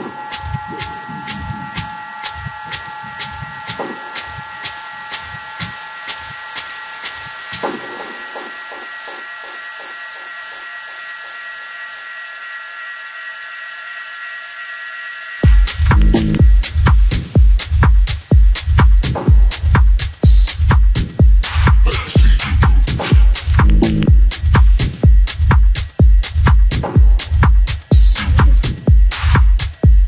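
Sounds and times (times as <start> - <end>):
kick and bass: 0.0 - 8.6, 15.4 - 30.0
hissing noise layer: 0.0 - 12.0
ticking hi-hats: 0.0 - 12.0, 15.4 - 30.0.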